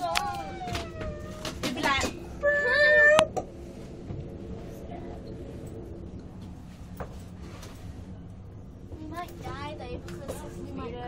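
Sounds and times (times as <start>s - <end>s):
young person squealing: 2.4s - 3.3s.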